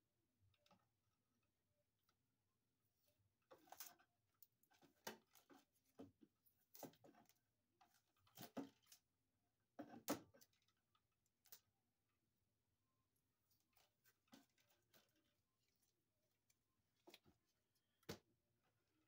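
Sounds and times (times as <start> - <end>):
pliers scraping and clicking on wires: 3.5 - 5.8.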